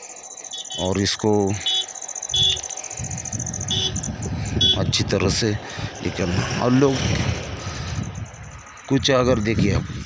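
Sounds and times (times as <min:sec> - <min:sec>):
insects trilling: 0:00.0 - 0:09.7
truck traffic rumble: 0:00.0 - 0:10.0.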